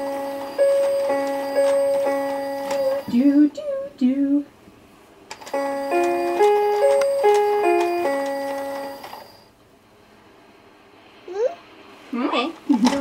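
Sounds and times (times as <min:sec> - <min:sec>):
electronic toy beeping tune: 0:00.0 - 0:03.1, 0:05.5 - 0:09.2.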